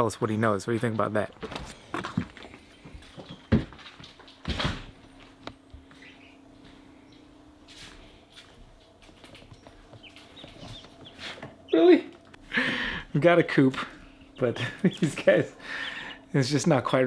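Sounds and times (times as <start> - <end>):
chicks peeping: 5.9 - 7.4, 9.1 - 16.9.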